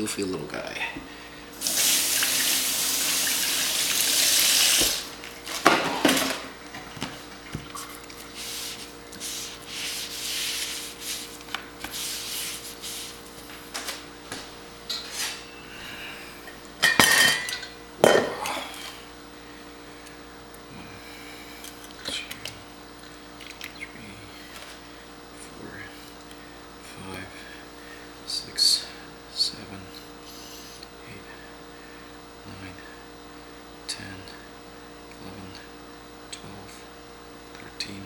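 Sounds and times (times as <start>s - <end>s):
faint steady hum: 0.0s - 38.0s
water running: 1.5s - 10.6s.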